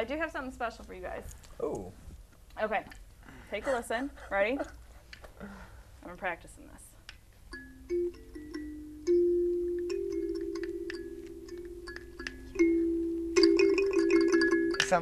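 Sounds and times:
kalimba plucked notes: 7.5s - 15.0s.

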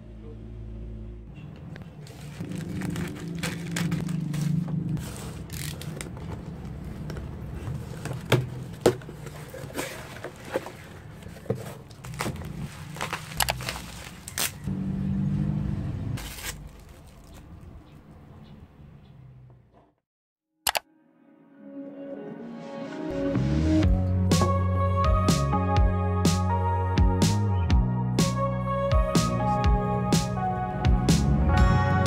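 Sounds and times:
plastic pouch crinkling: 2.0s - 6.7s, 11.8s - 14.7s
cardboard box rummaged through: 7.7s - 14.4s.

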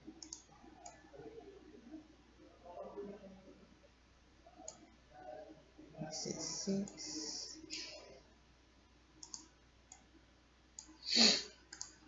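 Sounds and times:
computer mouse clicks: 0.2s - 1.0s, 4.6s - 4.9s, 9.2s - 10.1s, 10.8s - 11.0s, 11.7s - 12.0s.

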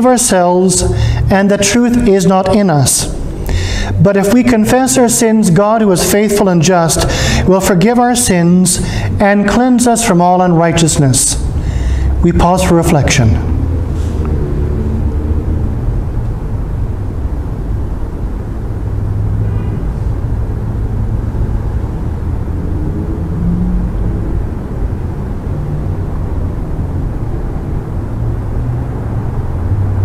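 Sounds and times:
faint humming tones: 0.0s - 28.6s
steady low rumble: 0.0s - 30.0s.

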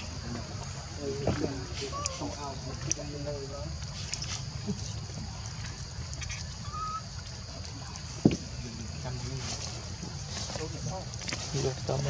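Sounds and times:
squawks: 5.6s - 7.2s
short animal calls: 6.2s - 7.2s.

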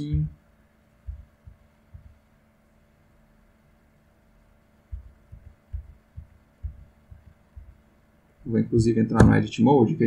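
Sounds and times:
soft low thumps on desk: 0.0s - 0.4s, 1.0s - 2.2s, 4.9s - 7.8s
faint steady hum: 0.0s - 10.0s.

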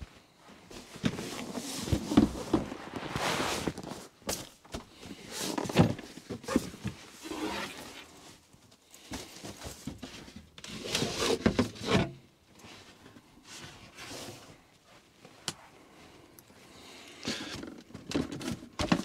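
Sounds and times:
rustling from hands: 0.0s - 10.2s.

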